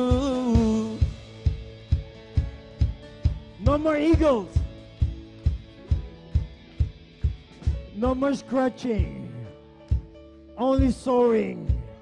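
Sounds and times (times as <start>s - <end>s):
person singing: 0.0s - 1.4s
drum kit beat: 0.0s - 9.2s, 9.8s - 12.0s.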